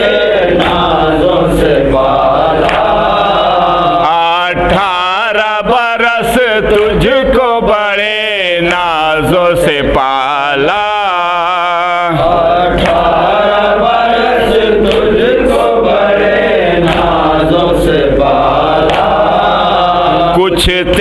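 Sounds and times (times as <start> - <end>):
men chanting a lament: 0.0 - 21.0.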